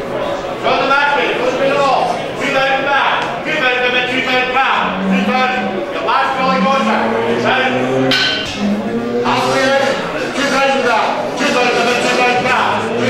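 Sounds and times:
cattle mooing: 3.9 - 11.3.

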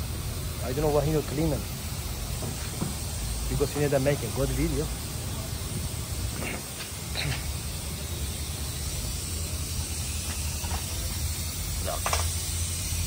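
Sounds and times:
broad hiss: 0.0 - 13.0
constant low hum: 0.0 - 13.0.

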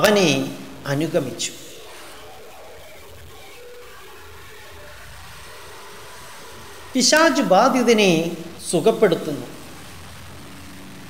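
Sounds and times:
low background hiss: 0.0 - 1.8.

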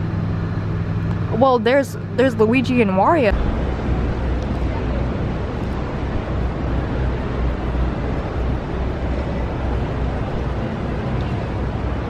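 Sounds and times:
outdoor noise: 0.0 - 12.0
wind buffeting microphone: 2.0 - 12.0.

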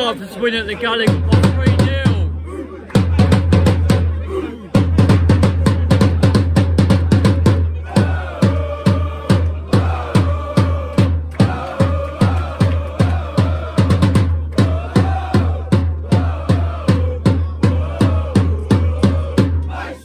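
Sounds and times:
voices chanting: 0.0 - 5.1, 7.6 - 20.0.

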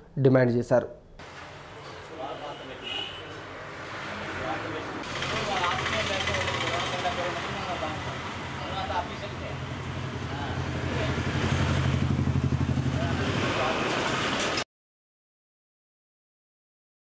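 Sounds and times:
engine throbbing: 4.7 - 14.6.

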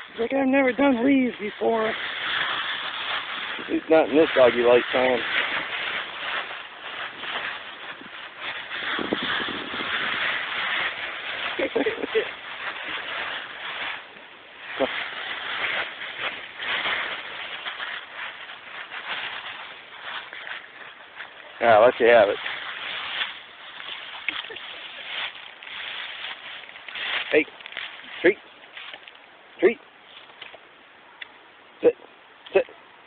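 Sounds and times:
dry leaves rustling and crunching: 0.0 - 31.2.

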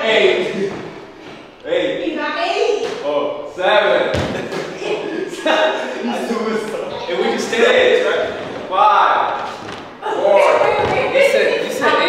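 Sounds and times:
voices talking indistinctly: 0.0 - 12.0
deep thump: 4.1 - 4.7.

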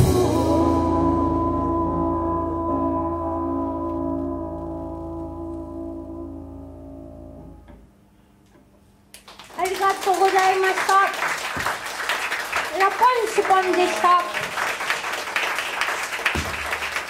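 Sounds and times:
applause: 9.2 - 17.0
person speaking: 12.7 - 14.4.

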